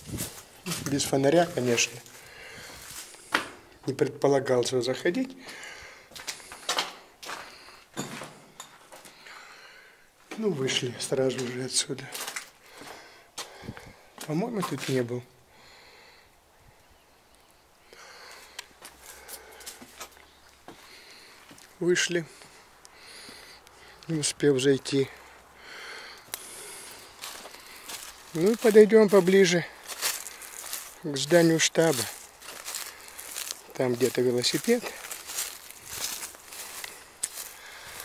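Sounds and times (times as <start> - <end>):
footsteps on concrete floor: 0.0 - 3.6, 27.2 - 31.0.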